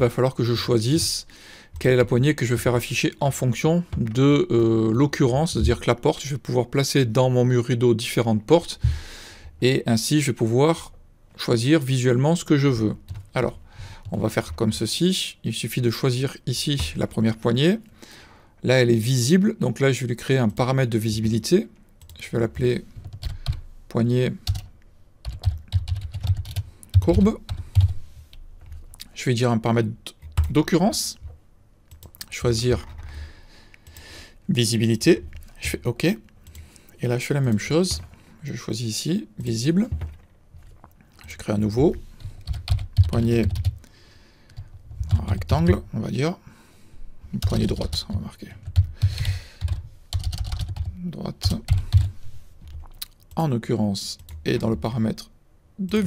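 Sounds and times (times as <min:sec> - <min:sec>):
typing on a computer keyboard: 0:13.1 - 0:13.4, 0:23.0 - 0:23.6, 0:24.4 - 0:28.0, 0:31.9 - 0:33.1, 0:42.3 - 0:43.8, 0:47.4 - 0:52.1.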